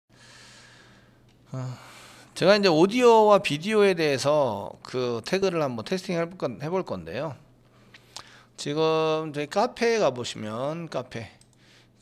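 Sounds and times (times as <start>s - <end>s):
man sighing: 1.5s - 2.3s.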